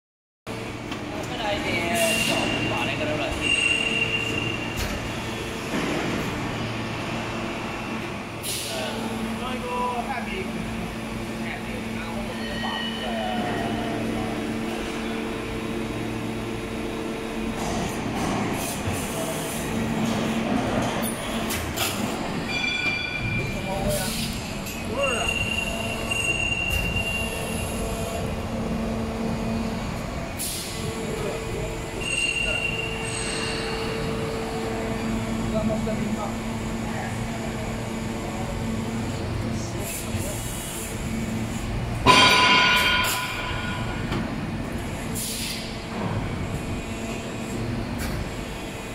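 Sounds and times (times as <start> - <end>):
factory machine running: 0.5 - 48.9
moulding machine hum with whine: 24.3 - 40.0.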